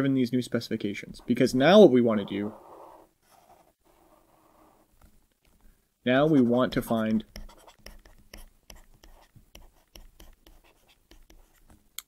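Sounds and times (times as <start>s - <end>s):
stylus scratching on a tablet: 6.3s - 11.7s.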